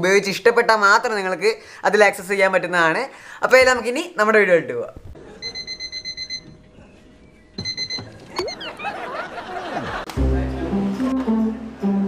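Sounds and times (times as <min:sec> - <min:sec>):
alarm clock beeping: 0:05.4 - 0:06.7, 0:07.4 - 0:08.7.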